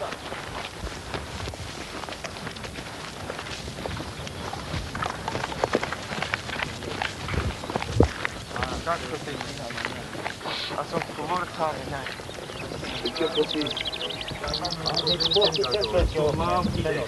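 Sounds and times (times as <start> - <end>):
footsteps on grass and rock: 0.0 - 17.0.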